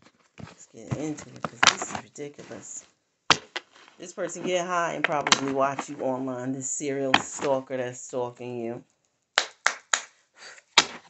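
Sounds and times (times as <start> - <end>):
sharp hand slaps: 9.4 - 10.2, 10.8 - 11.0.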